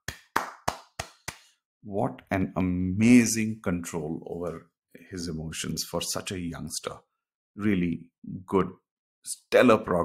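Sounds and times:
person clapping hands: 0.0s - 1.6s.

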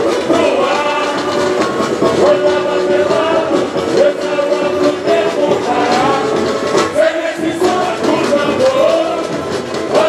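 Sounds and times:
many voices singing: 0.0s - 10.0s
samba drums beating: 0.0s - 10.0s.

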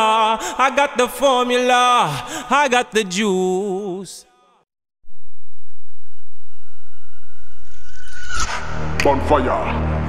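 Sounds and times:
thin high rising tone: 5.4s - 9.0s.

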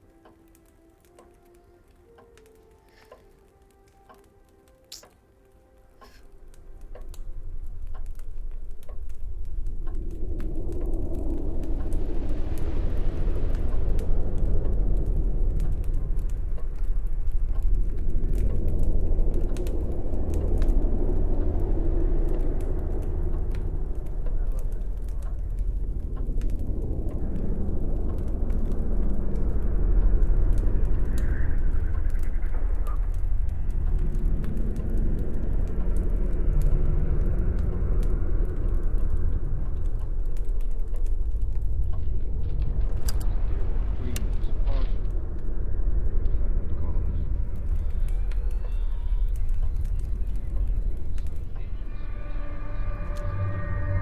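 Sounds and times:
faint scattered clicks: 0.0s - 54.0s
low rumbling suspense drone: 0.0s - 54.0s.

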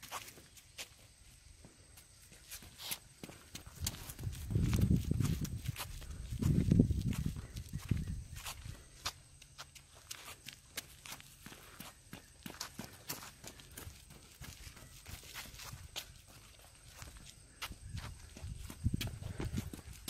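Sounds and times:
running footsteps on pavement: 0.0s - 20.0s.

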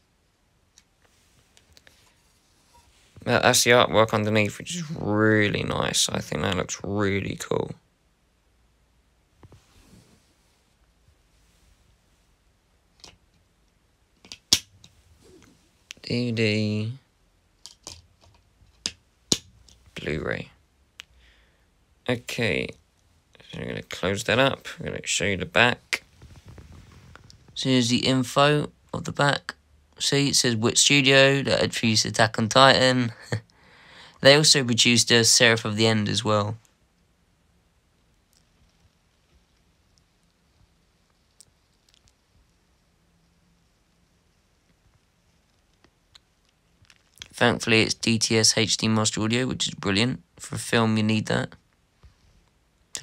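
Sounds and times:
low room hum: 0.0s - 53.0s.

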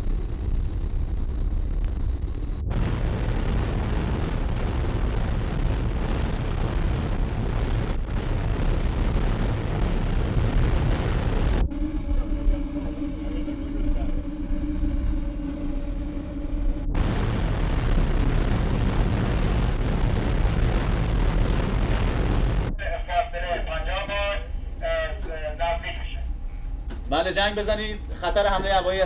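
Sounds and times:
steady hum with held tones: 0.0s - 29.0s
loud engine noise with hiss: 2.4s - 14.7s, 16.9s - 26.2s.

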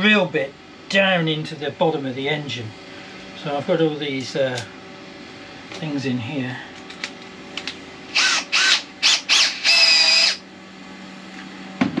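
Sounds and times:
power drill motor whining: 8.1s - 10.4s.

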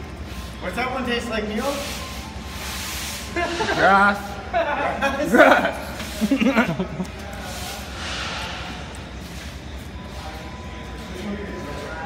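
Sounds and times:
faint background music: 0.0s - 12.0s
low background hum: 0.0s - 12.0s.

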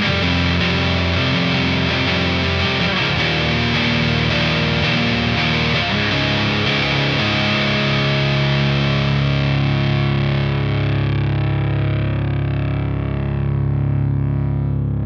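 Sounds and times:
distorted electric guitar chord: 0.0s - 15.0s.

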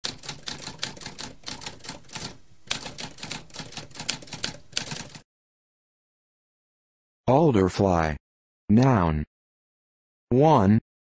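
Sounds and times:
typewriter keys clicking: 0.0s - 5.2s.

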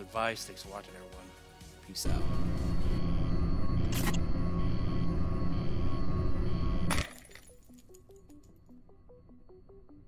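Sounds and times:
glass shattering crash: 6.9s - 7.6s.

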